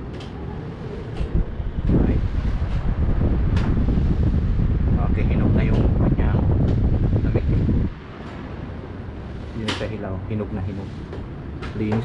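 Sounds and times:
air conditioner blowing air: 0:00.0 - 0:12.0.

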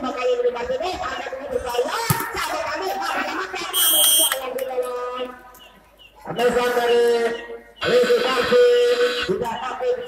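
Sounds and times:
crowd noise: 0:00.0 - 0:10.0
voices over loudspeaker: 0:00.0 - 0:10.0
referee's whistle: 0:03.7 - 0:04.4.

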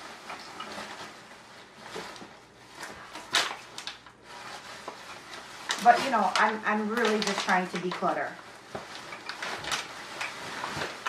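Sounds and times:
plastic bag rustling and crinkling: 0:00.0 - 0:11.0.

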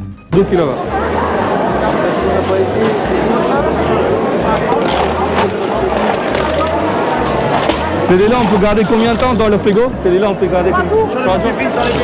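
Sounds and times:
indistinct voices chattering: 0:00.4 - 0:12.0.

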